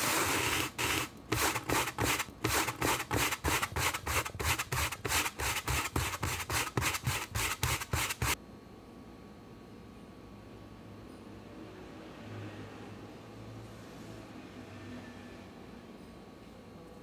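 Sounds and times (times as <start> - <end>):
rubbing against camera microphone: 0.0 - 8.4.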